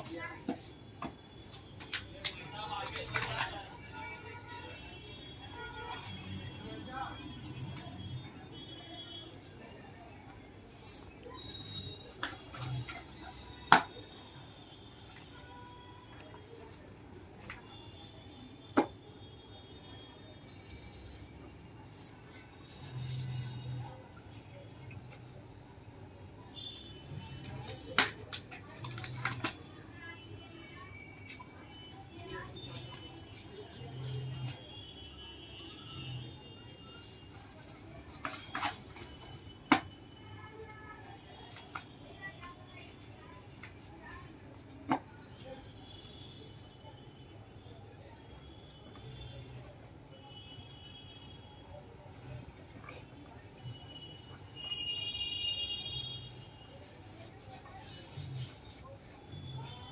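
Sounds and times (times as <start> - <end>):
paper and cardboard handling: 10.6 - 18.9, 21.1 - 25.3, 27.6 - 35.0, 36.8 - 45.5, 56.2 - 59.9.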